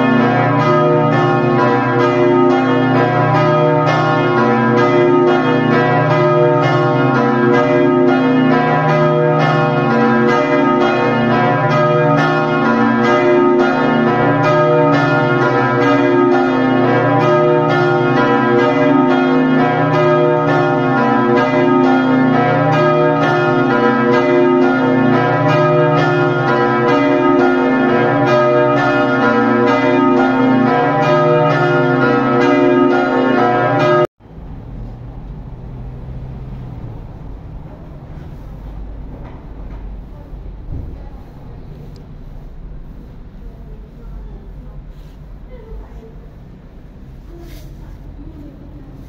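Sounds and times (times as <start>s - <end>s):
church bells pealing: 0.0s - 34.8s, 36.3s - 49.0s.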